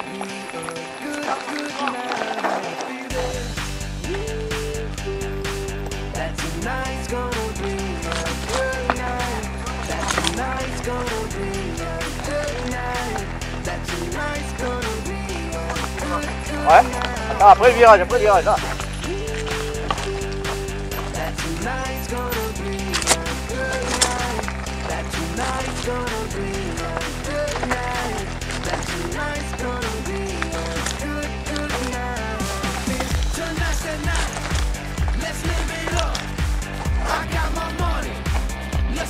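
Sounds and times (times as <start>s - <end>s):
background music with chords: 0.0s - 39.0s
pulsing beat: 3.1s - 39.0s.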